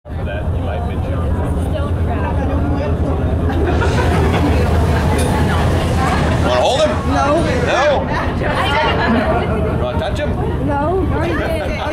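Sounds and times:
boat engine droning: 0:00.1 - 0:11.8
people chattering: 0:00.1 - 0:11.9.

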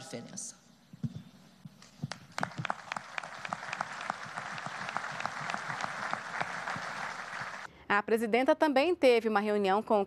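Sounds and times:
audience applauding: 0:02.1 - 0:07.7.

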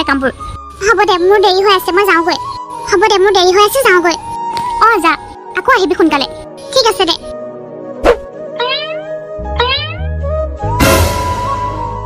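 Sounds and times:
cartoon background music: 0:00.0 - 0:12.0
squeaky rising sound effect: 0:08.6 - 0:10.2.

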